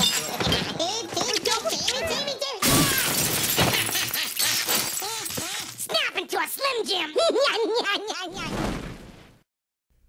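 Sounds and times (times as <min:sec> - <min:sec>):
glass shattering: 0:00.0 - 0:00.6, 0:02.6 - 0:05.9
household things smashing: 0:02.6 - 0:05.9.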